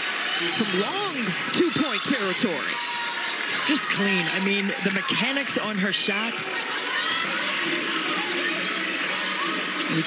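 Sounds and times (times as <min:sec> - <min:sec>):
arena crowd murmur: 0:00.0 - 0:10.0.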